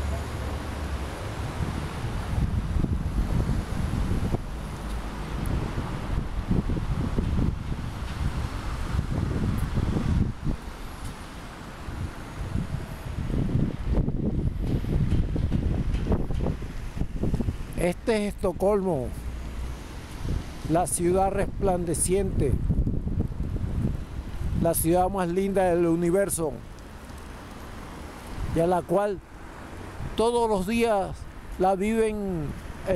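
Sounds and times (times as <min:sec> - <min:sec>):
road traffic rumble: 0:00.0 - 0:32.9
wind rumbling on microphone: 0:00.0 - 0:32.9.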